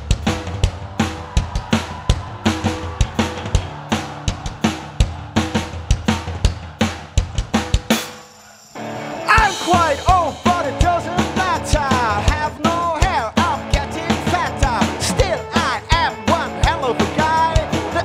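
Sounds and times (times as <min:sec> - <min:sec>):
drum kit beat: 0:00.0 - 0:08.4, 0:09.2 - 0:18.0
live band music: 0:08.8 - 0:18.0.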